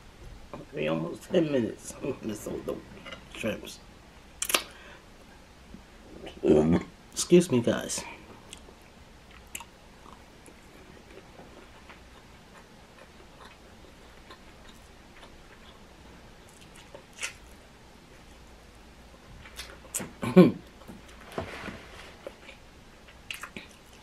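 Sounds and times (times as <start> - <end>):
faint chewing of food: 8.2 - 24.0.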